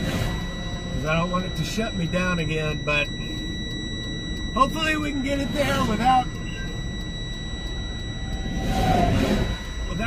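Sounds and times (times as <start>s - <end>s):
continuous high-pitched tone: 0.0s - 10.0s
road noise: 0.0s - 10.0s.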